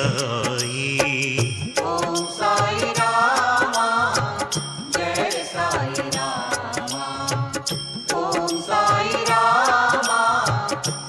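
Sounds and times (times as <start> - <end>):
chant-like devotional singing: 0.0 - 11.0
rhythmic percussion: 0.0 - 11.0.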